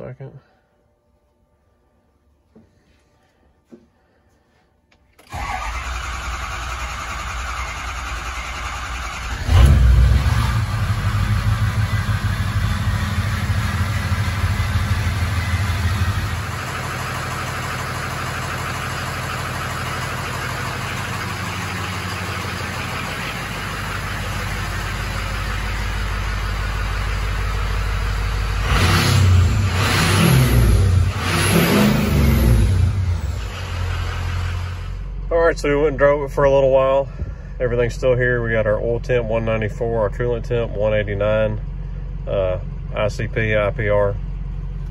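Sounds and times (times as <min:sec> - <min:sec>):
starter motor cranking: 0:05.2 - 0:10.8
diesel engine idling: 0:05.2 - 0:44.9
engine revving: 0:05.3 - 0:35.0.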